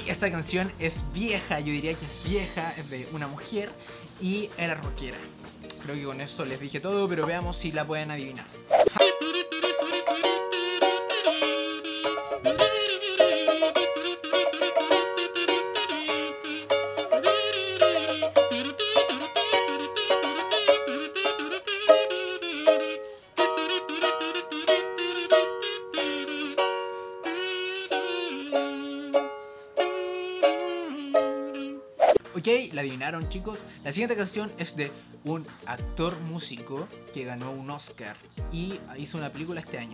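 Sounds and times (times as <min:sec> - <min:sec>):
kazoo melody: 0:08.9 - 0:32.2
strummed ukulele chords: 0:09.0 - 0:31.5.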